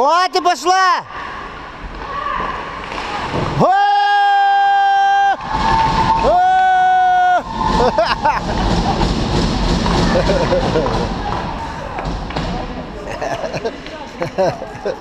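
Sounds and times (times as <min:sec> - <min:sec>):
crowd shouting and cheering: 0:02.0 - 0:13.0.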